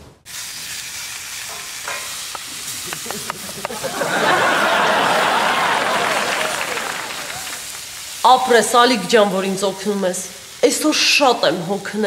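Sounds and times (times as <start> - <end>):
food sizzling in a pan: 0.3 - 12.0.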